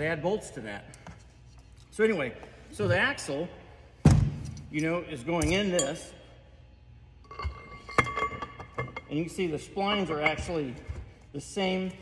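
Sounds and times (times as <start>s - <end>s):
metal clinking with ringing tone: 7.2s - 10.8s.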